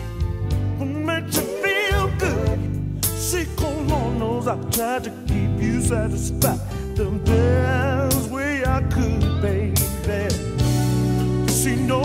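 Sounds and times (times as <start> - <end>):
electric guitar playing: 0.2 - 6.5
slow r and b song with singing: 0.6 - 12.0.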